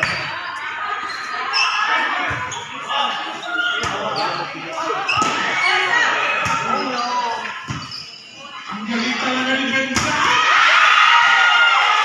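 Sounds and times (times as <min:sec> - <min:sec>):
volleyball thuds: 0:05.1 - 0:05.5
people shouting: 0:10.0 - 0:12.0.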